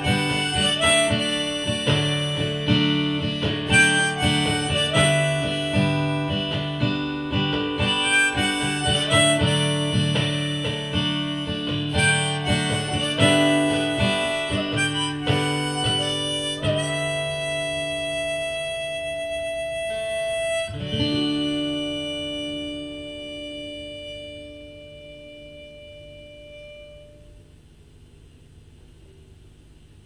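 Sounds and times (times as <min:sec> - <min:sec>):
harmonica: 0:00.0 - 0:27.4
acoustic guitar strumming: 0:00.0 - 0:27.6.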